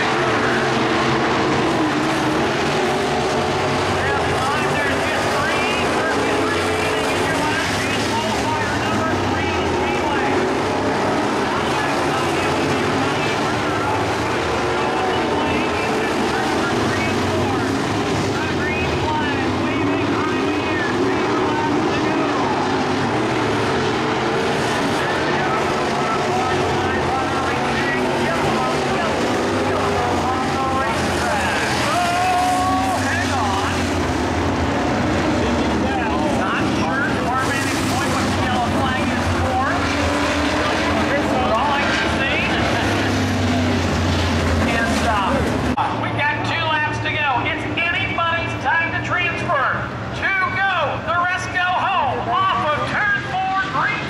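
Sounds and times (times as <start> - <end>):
people's voices: 0.0 - 54.0
race car engines revving: 0.0 - 54.0.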